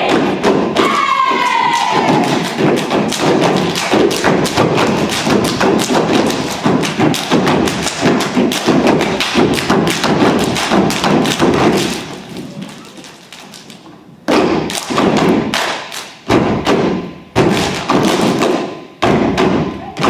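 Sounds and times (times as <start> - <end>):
stomping and clapping: 0.0 - 20.0.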